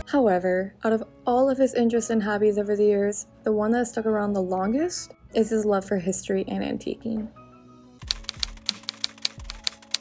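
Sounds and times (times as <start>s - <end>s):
background music: 0.0s - 10.0s
typewriter keys clacking: 8.0s - 10.0s.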